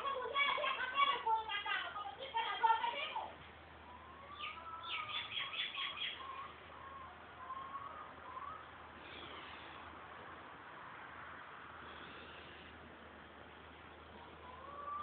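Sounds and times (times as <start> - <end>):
faint low hum: 0.0 - 15.0
bird chirping and whistling: 4.3 - 6.4.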